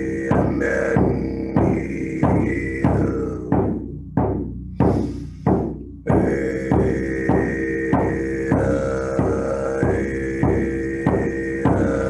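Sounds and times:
didgeridoo drone: 0.0s - 12.0s
frame drum beating: 0.0s - 12.0s.

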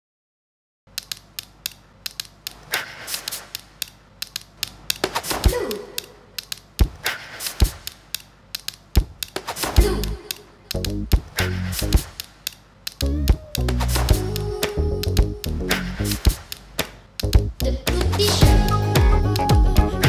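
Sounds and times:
metal buttons clicking: 10.0s - 14.4s.

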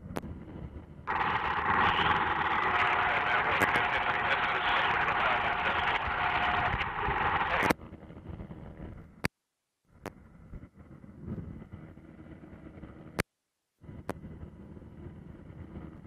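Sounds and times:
low rumble: 1.1s - 7.7s
radio channel hiss: 1.1s - 7.8s
radio click: 1.1s - 7.8s.

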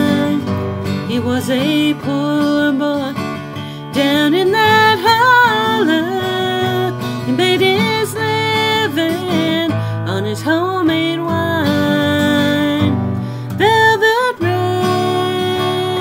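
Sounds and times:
acoustic guitar strumming: 0.0s - 16.0s
woman singing country ballad: 0.0s - 16.0s.

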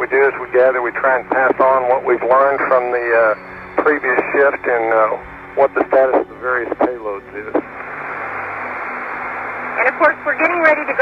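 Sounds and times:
faint low hum: 0.0s - 11.0s
radio static hiss: 0.0s - 11.0s
person speaking over radio: 1.2s - 7.6s.

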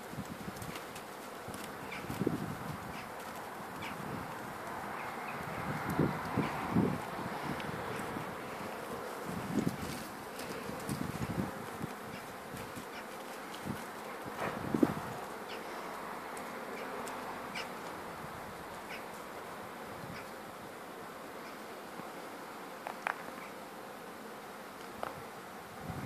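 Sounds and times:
flying insect buzzing: 0.0s - 26.0s.

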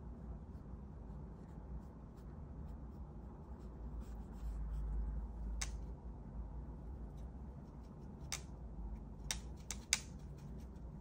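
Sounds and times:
low steady hum: 0.0s - 11.0s
paintbrush clicking against palette: 8.2s - 8.6s, 9.2s - 10.5s.

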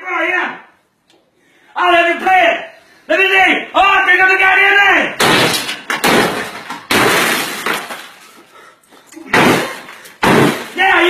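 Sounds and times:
sharp bangs: 5.2s - 8.1s, 9.3s - 11.0s
glass shattering: 5.2s - 8.3s, 9.3s - 11.0s.

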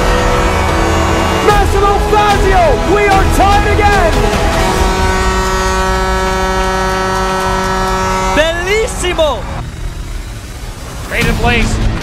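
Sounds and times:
announcer calling: 0.0s - 9.6s
goal horn blast: 0.0s - 9.6s.

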